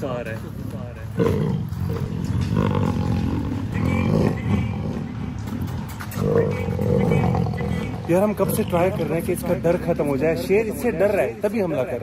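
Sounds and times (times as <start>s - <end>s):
lion growling low: 0.5s - 10.0s.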